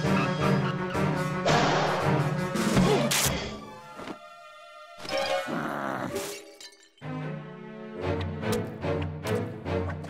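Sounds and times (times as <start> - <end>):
orchestral cartoon music: 0.0 - 10.0.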